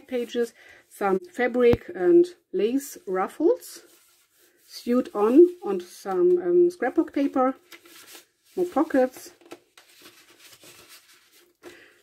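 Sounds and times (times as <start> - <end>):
paper rustling: 3.8 - 12.0.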